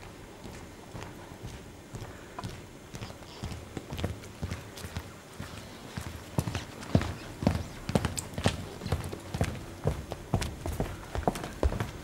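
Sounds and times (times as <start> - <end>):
hard clip-clop knocks: 1.0 - 12.0.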